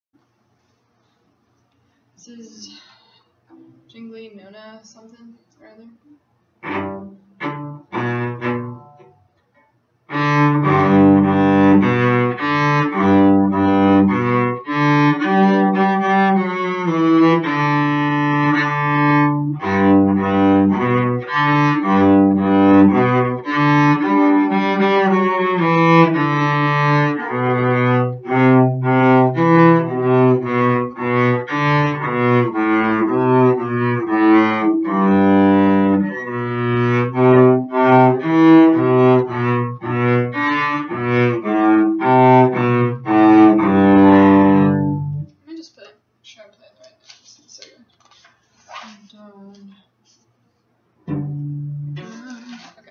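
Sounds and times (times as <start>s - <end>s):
bowed cello melody: 6.6s - 9.2s, 10.1s - 45.3s, 51.0s - 52.2s.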